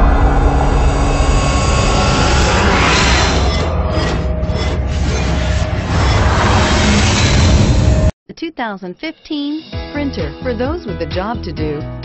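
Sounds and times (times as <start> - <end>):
deep rumble: 0.0 - 8.1
rushing whoosh: 0.0 - 8.1.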